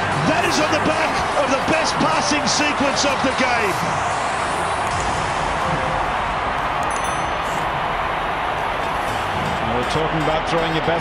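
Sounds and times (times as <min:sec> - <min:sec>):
simulated crowd noise: 0:00.0 - 0:11.0.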